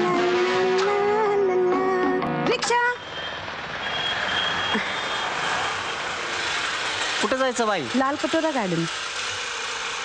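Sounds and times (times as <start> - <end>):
road traffic hiss: 2.7 - 10.0.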